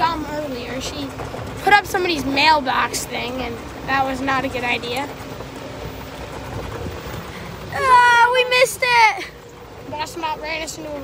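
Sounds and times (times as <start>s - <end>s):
wind noise: 5.2s - 8.0s.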